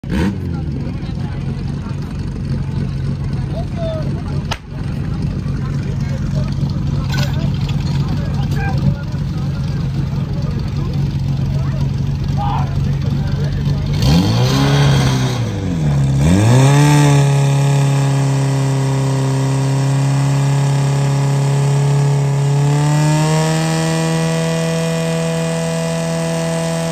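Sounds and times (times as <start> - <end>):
pump engine revving: 0.0 - 26.9
sharp crack: 4.4 - 5.0.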